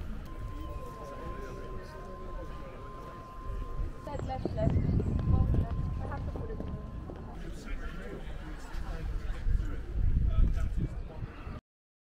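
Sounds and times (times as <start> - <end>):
indistinct voices of passers-by: 0.0 - 11.6
low thumps and rumble: 3.7 - 7.4.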